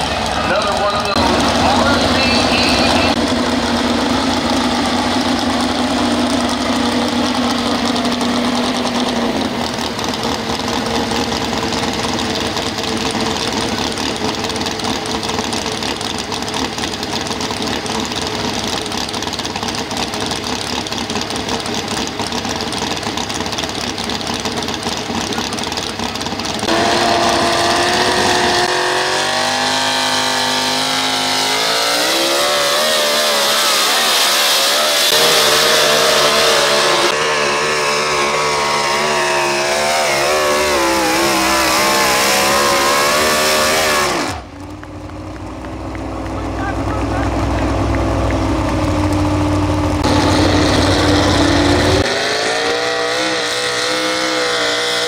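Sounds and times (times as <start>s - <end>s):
truck engine revving: 0.0s - 55.0s.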